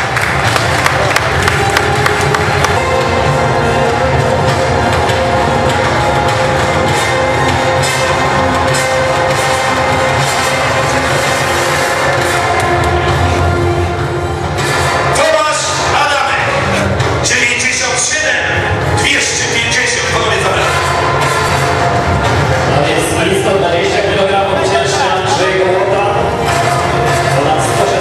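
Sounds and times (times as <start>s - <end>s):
crowd cheering: 0.0s - 15.6s, 20.3s - 28.0s
loud music: 0.0s - 28.0s.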